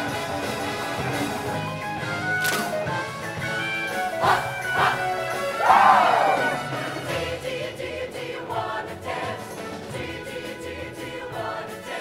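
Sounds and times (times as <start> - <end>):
live band with brass: 0.0 - 7.2.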